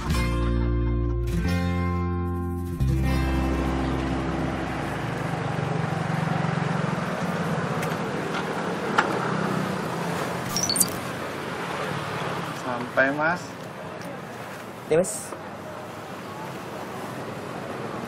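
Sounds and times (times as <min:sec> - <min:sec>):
background music: 0:00.0 - 0:04.8
street traffic: 0:01.3 - 0:18.0
motor scooter riding: 0:03.9 - 0:12.5.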